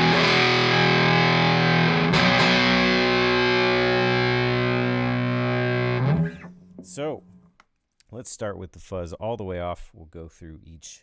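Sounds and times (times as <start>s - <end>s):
fuzz-distorted electric guitar chords: 0.0s - 7.4s.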